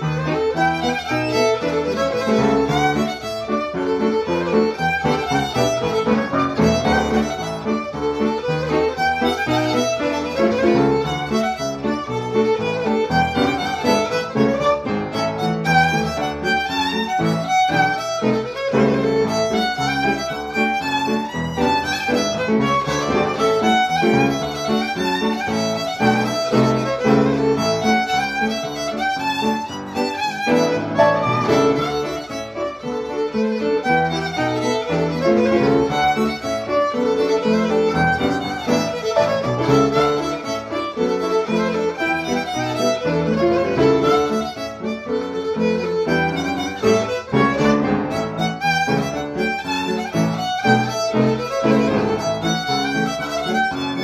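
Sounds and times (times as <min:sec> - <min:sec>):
fiddle playing a reel: 0:00.0 - 0:54.0
upright piano accompaniment: 0:00.0 - 0:54.0.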